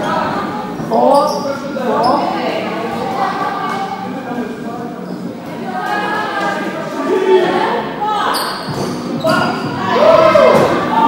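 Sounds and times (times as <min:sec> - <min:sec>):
players shouting: 0:09.2 - 0:11.0.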